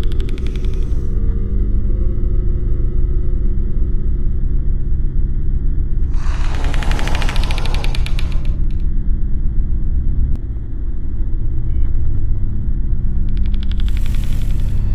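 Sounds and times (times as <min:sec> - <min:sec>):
deep rumbling drone: 0:00.0 - 0:14.9
rapid rattling clicks: 0:06.1 - 0:08.8.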